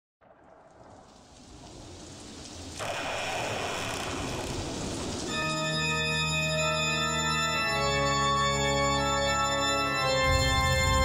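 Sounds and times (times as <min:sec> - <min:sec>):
rain-like wash of noise: 0:00.2 - 0:08.8
sustained organ chords: 0:05.3 - 0:11.0.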